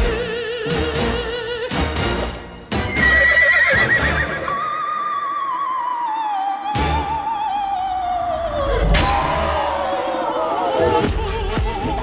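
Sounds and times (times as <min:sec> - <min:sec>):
music: 0:00.0 - 0:12.0
horse whinnying: 0:02.8 - 0:05.1.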